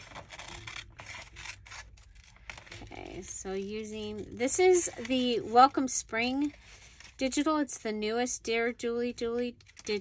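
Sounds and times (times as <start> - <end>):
paper and card handled: 0.0 - 7.9.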